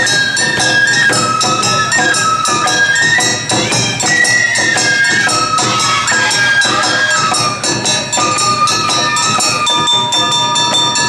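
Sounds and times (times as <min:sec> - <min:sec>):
small hand gongs clanging: 0:00.0 - 0:11.0.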